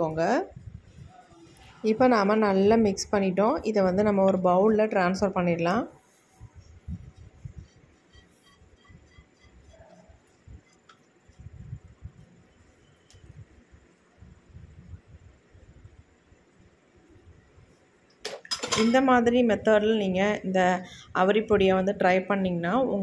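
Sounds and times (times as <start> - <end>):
spoon scraping paste from metal pot: 6.5 - 11.4.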